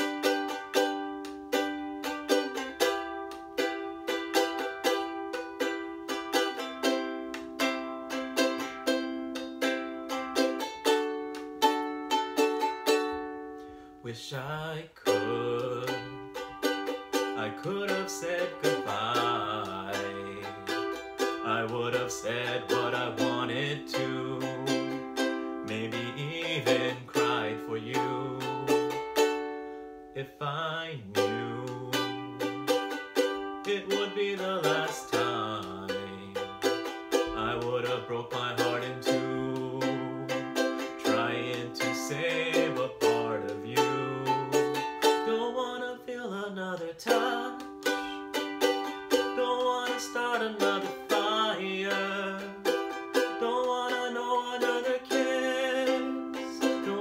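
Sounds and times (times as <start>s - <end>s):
ukulele strumming: 0.0s - 57.0s
man singing: 14.0s - 29.5s, 30.1s - 57.0s.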